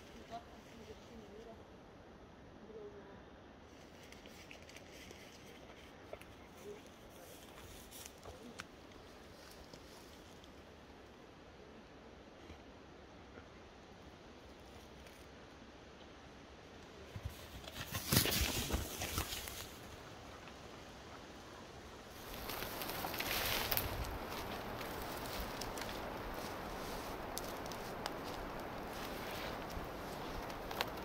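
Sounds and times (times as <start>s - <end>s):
claws scraping on tree bark: 22.1s - 31.0s.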